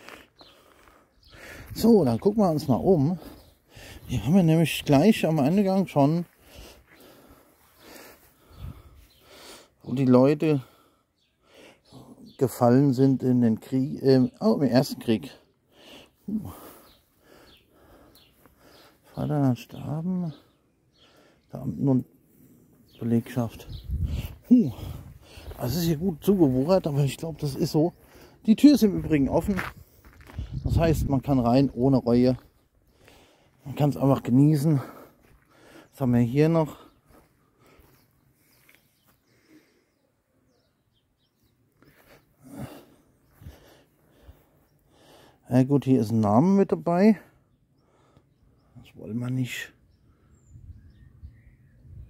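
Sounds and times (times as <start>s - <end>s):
faint bird chirps: 36.0s - 43.5s, 47.4s - 52.0s.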